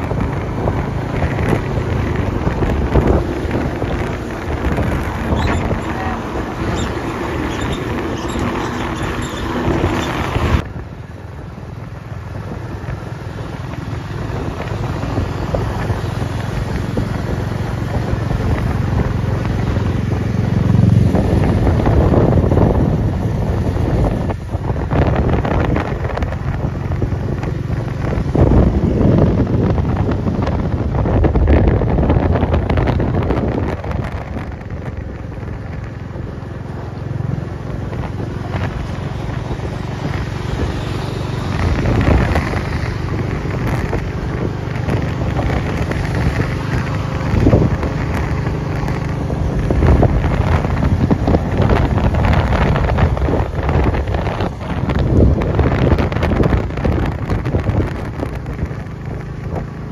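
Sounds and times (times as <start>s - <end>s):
motorcycle engine running: 0.0s - 59.9s
wind buffeting microphone: 0.0s - 59.9s.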